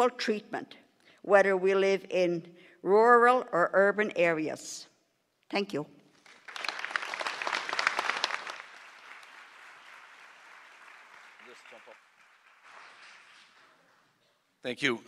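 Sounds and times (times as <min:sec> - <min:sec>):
audience clapping: 0:06.1 - 0:14.0.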